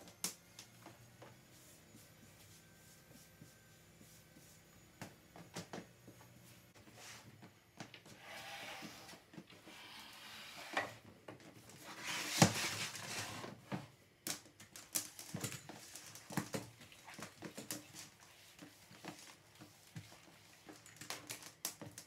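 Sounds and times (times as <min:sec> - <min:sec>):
furniture scraping on laminate floor: 0:08.2 - 0:11.0, 0:11.8 - 0:13.6.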